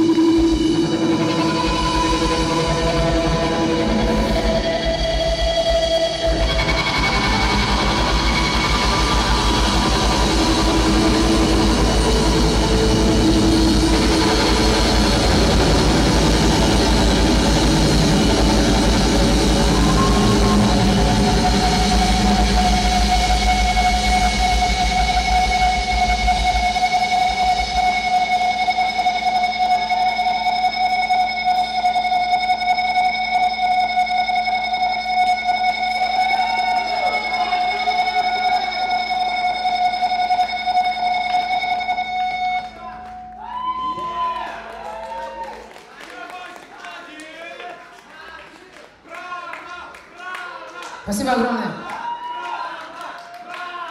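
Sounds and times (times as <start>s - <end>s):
grunge band playing loudly: 0.0s - 27.0s
guitar feedback ringing: 0.0s - 44.4s.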